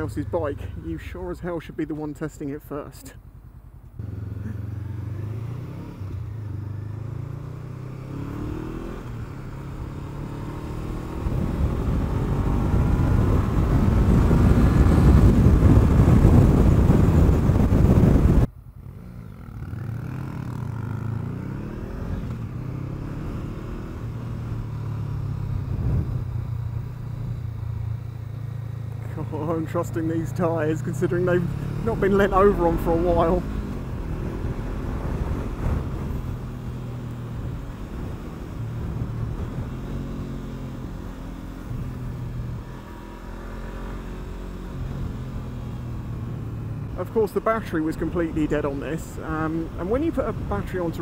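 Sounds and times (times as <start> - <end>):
motorcycle engine revving: 3.2 - 51.0
wind rushing: 11.0 - 18.5, 23.8 - 26.9, 32.8 - 40.0.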